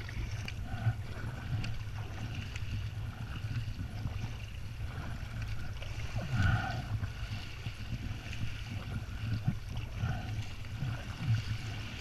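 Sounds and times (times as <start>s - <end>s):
water splashing against kayak: 0.0s - 12.0s.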